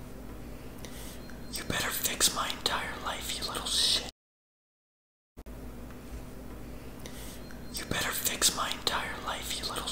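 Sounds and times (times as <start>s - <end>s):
woman whispering: 1.5s - 4.1s, 7.7s - 9.9s.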